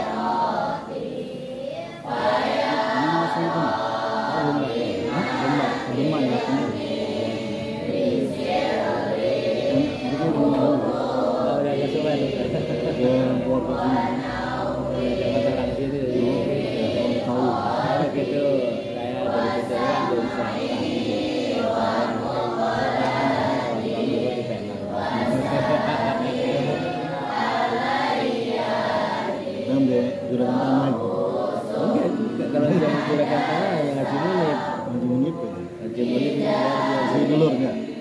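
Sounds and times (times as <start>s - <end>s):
group chanting a prayer: 0.0s - 38.0s.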